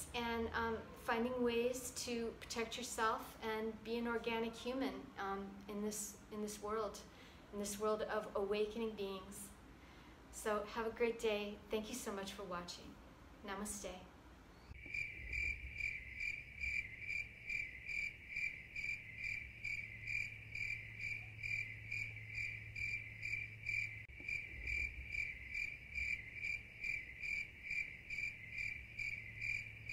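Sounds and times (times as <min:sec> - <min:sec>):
crickets chirping: 0:14.7 - 0:29.9.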